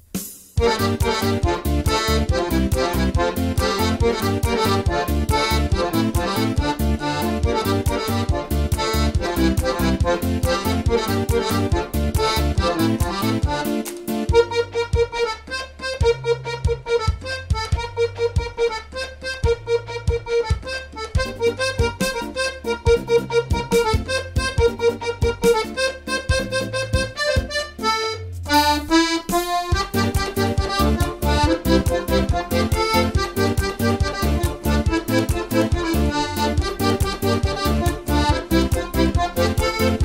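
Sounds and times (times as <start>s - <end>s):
accordion playing upbeat pop tune: 0.1s - 40.0s.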